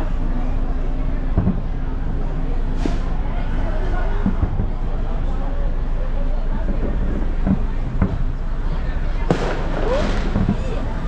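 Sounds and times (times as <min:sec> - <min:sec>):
crowd talking: 0:00.0 - 0:11.0
fireworks exploding: 0:09.2 - 0:11.0.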